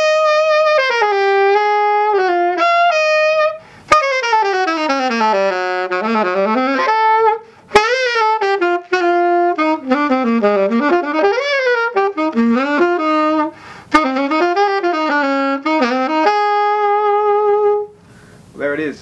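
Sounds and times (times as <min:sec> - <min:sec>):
alto saxophone solo: 0:00.0 - 0:18.3
saxophonist breaths: 0:07.4 - 0:07.7, 0:13.5 - 0:13.9, 0:18.0 - 0:18.6.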